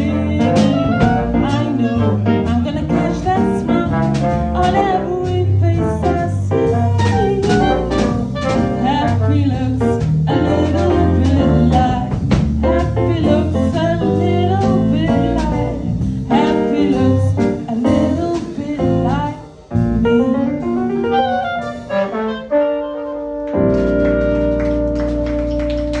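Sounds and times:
small jazz band playing: 0.0 - 26.0
clarinet: 6.1 - 9.6, 20.6 - 26.0.

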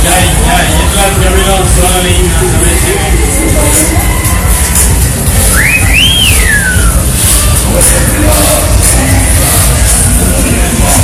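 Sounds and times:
low rumble of fairground noise: 0.0 - 11.0
whistled sliding note: 5.5 - 7.0.

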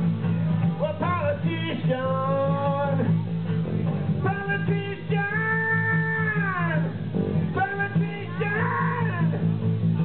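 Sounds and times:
acoustic guitars: 0.0 - 10.0
bass guitar: 0.0 - 10.0
person singing: 7.6 - 9.4.

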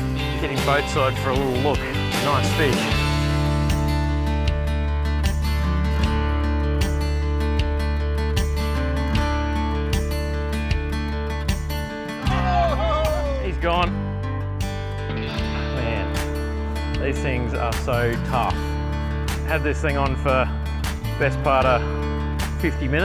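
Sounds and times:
background music with steady beat: 0.0 - 23.0
person speaking: 12.3 - 13.9.

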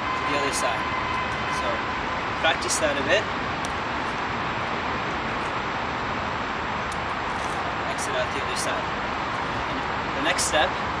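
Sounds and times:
distant city traffic hum: 0.0 - 11.0.

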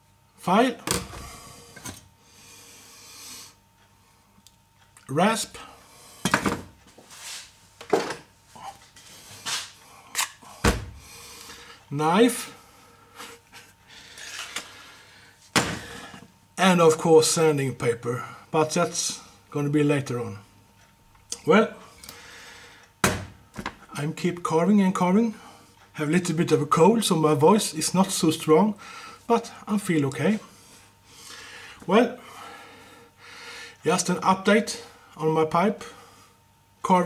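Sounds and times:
heavy thud: 10.6 - 11.0.

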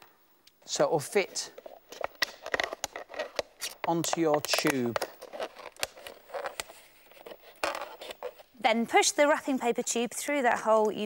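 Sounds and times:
scissors cutting hard plastic: 1.9 - 8.2.

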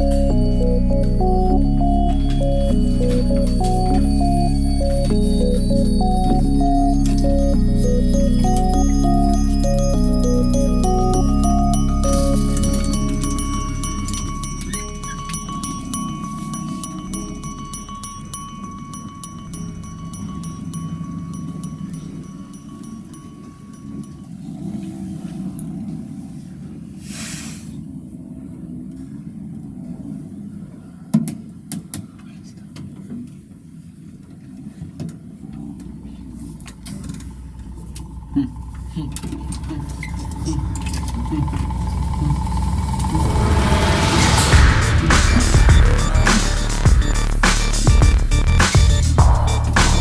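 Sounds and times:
soft background music: 0.0 - 23.3
low quiet voices: 28.4 - 33.5.

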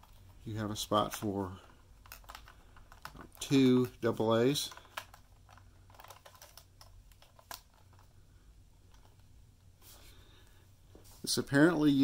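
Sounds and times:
plastic camera clicks and handling: 4.7 - 8.0.

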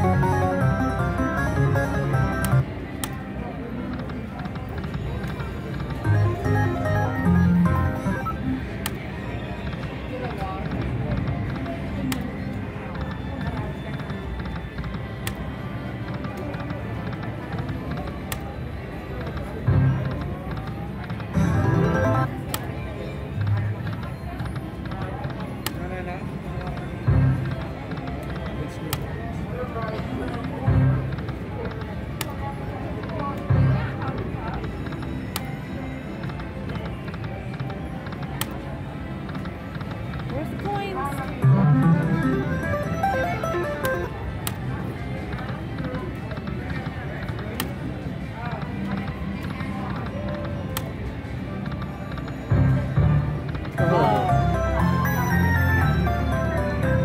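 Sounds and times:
slot machine game music: 0.0 - 2.8, 5.6 - 9.2, 21.3 - 22.6, 41.2 - 45.0, 52.7 - 57.0.

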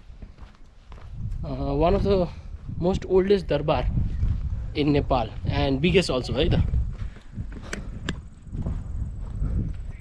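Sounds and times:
footsteps on grass: 0.0 - 10.0
low microphone rumble: 1.0 - 10.0
man speaking: 4.8 - 6.7.

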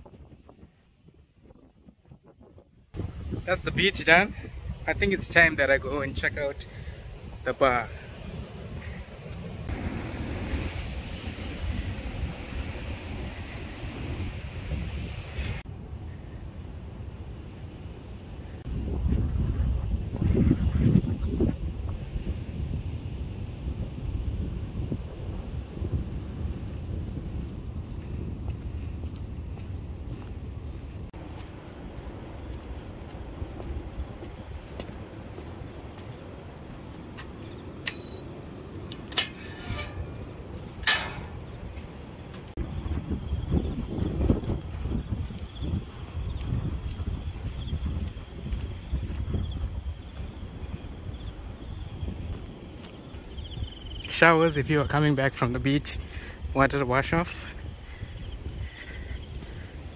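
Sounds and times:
wind rumbling on microphone: 0.0 - 59.9
short electronic beep: 37.9 - 38.3
metallic gate latch clacks: 38.9 - 40.2, 40.8 - 41.5.

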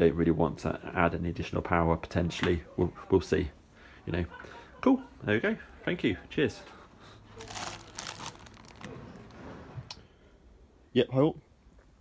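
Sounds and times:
plastic bags crinkling: 7.4 - 9.3.

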